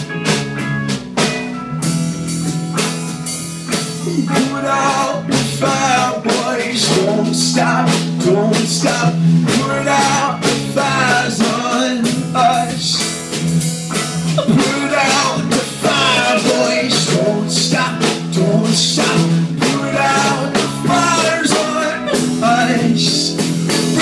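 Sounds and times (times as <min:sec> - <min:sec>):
drum beat: 0:00.0 - 0:24.0
electric guitars: 0:00.0 - 0:24.0
person singing into microphone: 0:04.0 - 0:13.1, 0:14.3 - 0:24.0.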